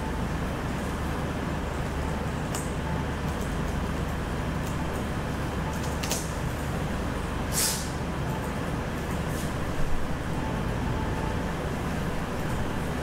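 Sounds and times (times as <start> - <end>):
brief hiss: 7.5 - 7.9.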